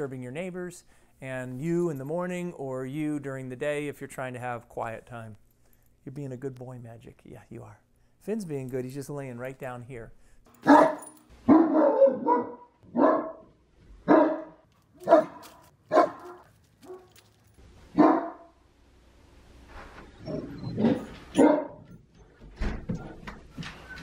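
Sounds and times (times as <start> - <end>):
dog barking loudly: 10.6 - 17.1, 18.0 - 18.5, 20.8 - 21.8.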